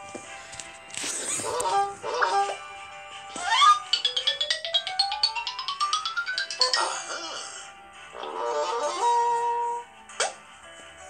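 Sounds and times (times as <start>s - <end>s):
fast plinking notes: 3.4s - 7.4s
rising tone: 3.6s - 7.2s.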